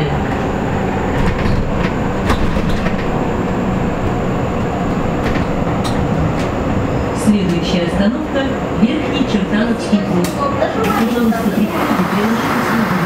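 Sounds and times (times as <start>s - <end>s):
road and tyre rumble: 0.0s - 13.0s.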